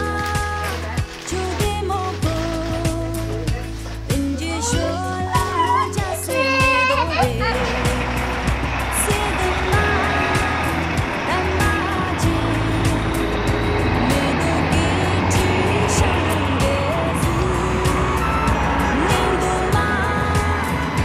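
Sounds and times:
faint music: 0.0s - 21.0s
road traffic: 3.2s - 21.0s
steady low rumble: 6.0s - 21.0s.

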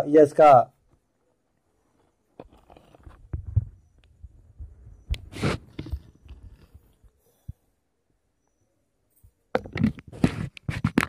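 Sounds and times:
low thumps and clicks: 2.5s - 6.9s.

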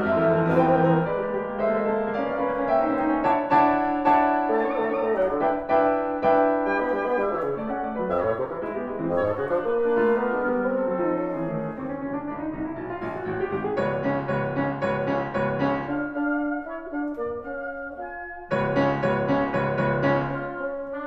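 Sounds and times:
piano chords: 0.0s - 21.0s.

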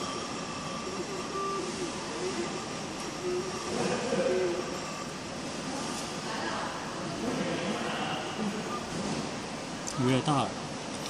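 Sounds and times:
workshop background noise: 0.0s - 11.0s
faint distant voices: 0.5s - 10.6s.

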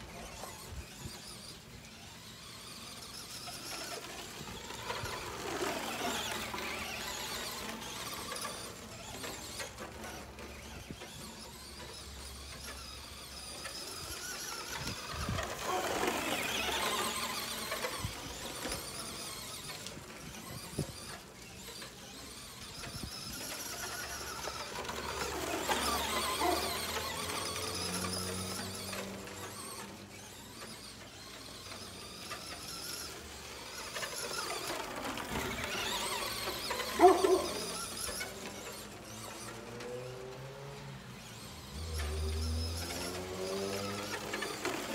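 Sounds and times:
rc truck electric motor whining: 0.0s - 44.9s.

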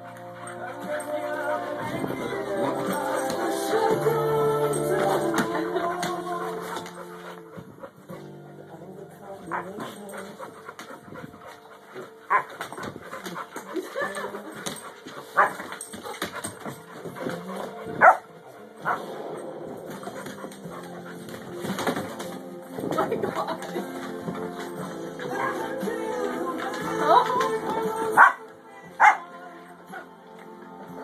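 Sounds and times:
background music: 0.0s - 31.0s
puppy barking: 12.0s - 14.3s, 15.2s - 16.8s, 17.6s - 19.1s, 25.2s - 25.8s, 28.1s - 29.3s.

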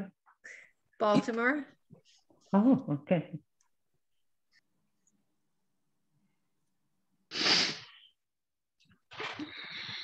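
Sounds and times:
burst of breath into microphone: 7.3s - 8.1s.

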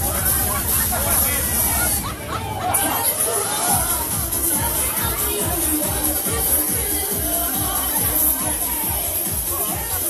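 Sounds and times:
crowd chatter: 0.0s - 10.0s
loud music with bass beat: 0.0s - 10.0s.

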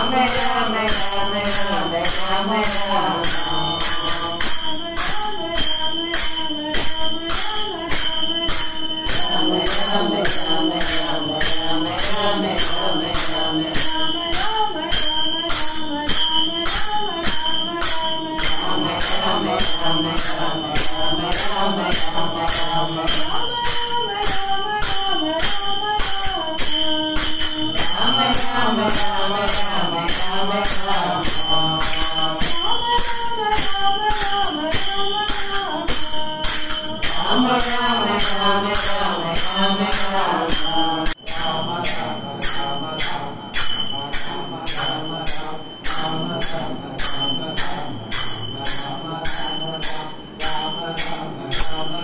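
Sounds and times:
group singing devotional song: 0.0s - 5.7s, 6.8s - 52.0s.

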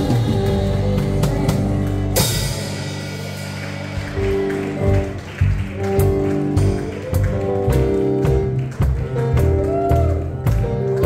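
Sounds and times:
electric bass notes: 0.0s - 11.0s
held keyboard chords: 0.0s - 11.0s.

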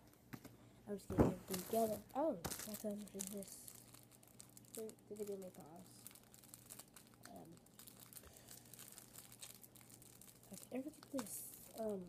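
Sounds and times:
packaging crinkling: 1.5s - 12.0s.

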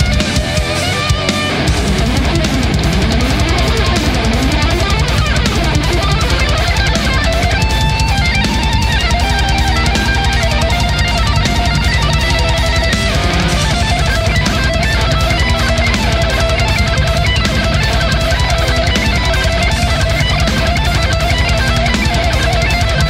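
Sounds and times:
death metal instrumental: 0.0s - 23.0s.

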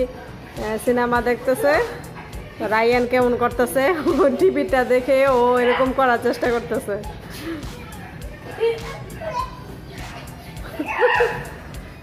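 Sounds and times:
child's voice: 7.8s - 10.2s.

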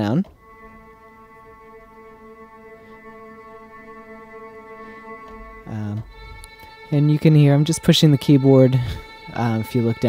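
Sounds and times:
sustained bowed string tone: 0.0s - 10.0s.

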